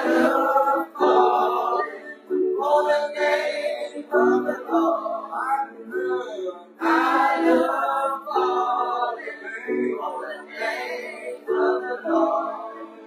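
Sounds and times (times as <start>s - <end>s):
church choir singing: 0.0s - 13.0s.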